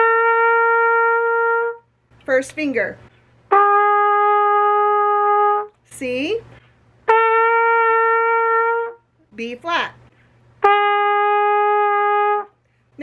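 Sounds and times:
trumpet long notes: 0.0 - 2.0, 3.5 - 5.8, 7.0 - 9.2, 10.6 - 12.6.

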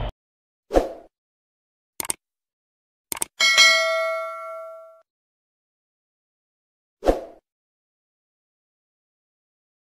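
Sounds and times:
mouse clicks: 2.0 - 2.2, 3.1 - 3.3
notification bell ding: 3.4 - 5.0.

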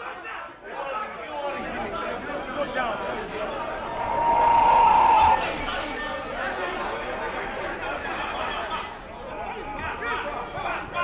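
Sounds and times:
murmur of spectators chatting: 0.0 - 11.0
whistle blast: 3.7 - 6.1.

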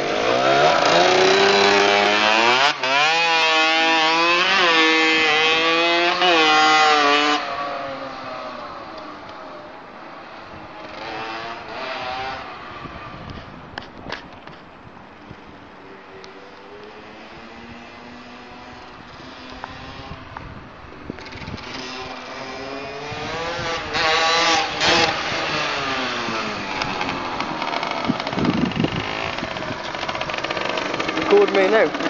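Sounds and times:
dirt bike revving through gears: 0.0 - 8.0, 10.8 - 12.7, 21.2 - 32.0.

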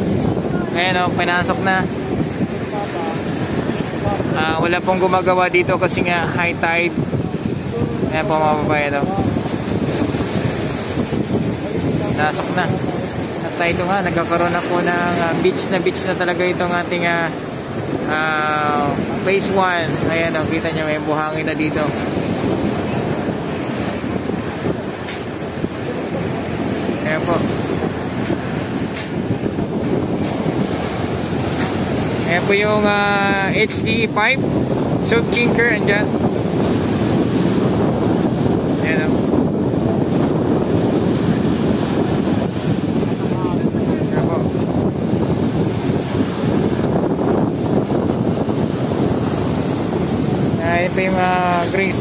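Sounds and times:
small waves washing on sand: 0.0 - 52.0
surf breaking on shore: 0.0 - 52.0
wind buffeting microphone: 0.0 - 52.0.

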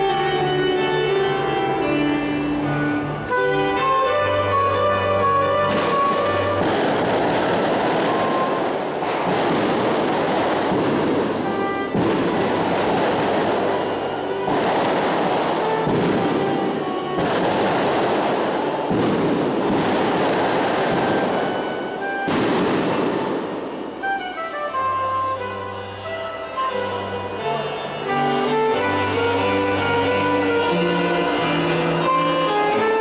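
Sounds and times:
soprano saxophone music: 0.0 - 33.0
loud rushing noise: 5.2 - 24.4.

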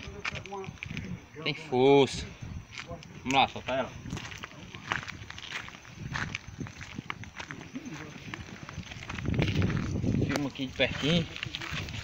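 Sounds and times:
footsteps on rough ground: 0.0 - 1.2, 2.5 - 12.0
faint voices: 0.0 - 12.0.

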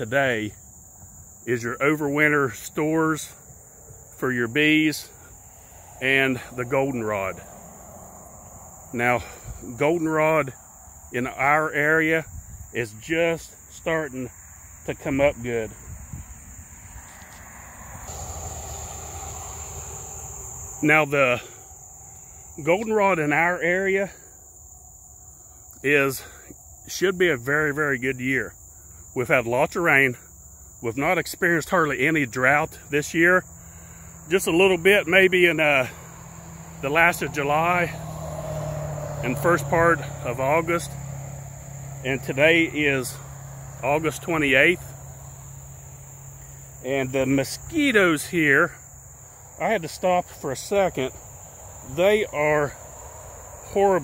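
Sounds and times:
crickets and insects chirping: 0.0 - 54.0.

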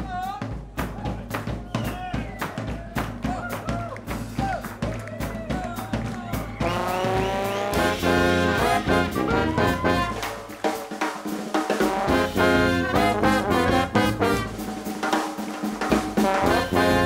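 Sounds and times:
bass: 0.0 - 10.3, 11.9 - 14.7, 16.2 - 17.0
drum kit groove: 0.0 - 17.0
horn section playing: 5.3 - 17.0.

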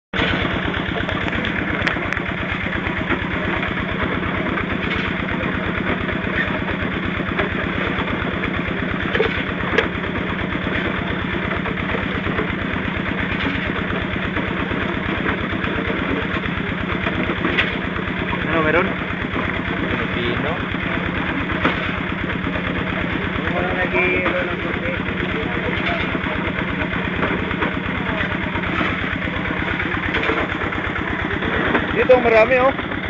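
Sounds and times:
small engine running: 0.2 - 33.0.

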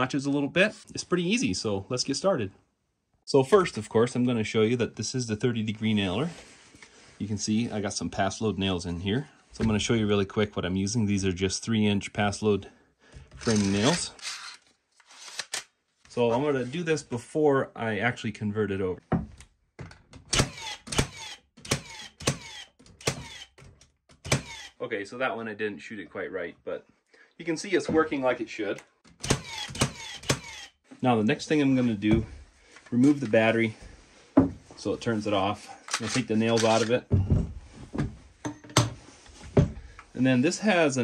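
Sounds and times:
nail gun firing: 20.3 - 23.6, 24.2 - 24.7, 29.2 - 30.7
sharp metallic clicks: 20.3 - 24.7, 28.8 - 30.7
tool whine: 20.4 - 23.6, 24.3 - 24.8, 29.2 - 30.8.

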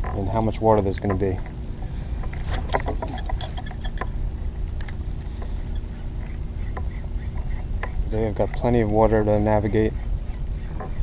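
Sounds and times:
fishing gear clicks and taps: 0.0 - 1.5
water rumbling around kayak: 0.0 - 11.0.

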